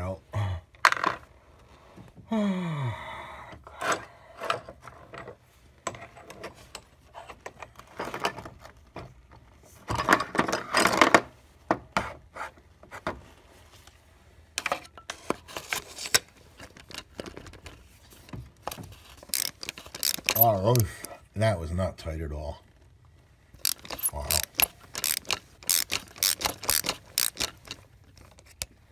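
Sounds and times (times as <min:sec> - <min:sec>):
tools clicking and knocking: 0:14.6 - 0:21.2, 0:23.6 - 0:28.8
ratchet clicking: 0:19.3 - 0:20.6, 0:23.6 - 0:28.7
scraping rattle: 0:23.6 - 0:28.4.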